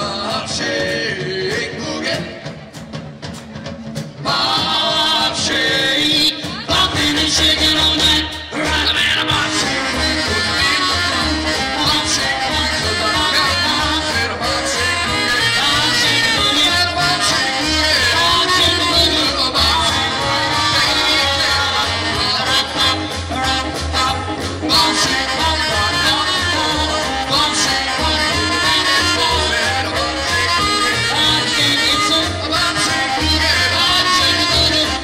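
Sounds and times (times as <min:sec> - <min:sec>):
vocal group singing: 0:00.0 - 0:02.8, 0:04.2 - 0:35.0
drums: 0:00.0 - 0:35.0
electric guitar: 0:03.3 - 0:35.0.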